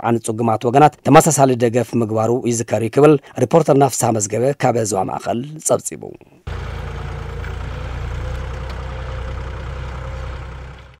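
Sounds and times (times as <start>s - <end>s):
tractor diesel engine running: 6.5s - 11.0s.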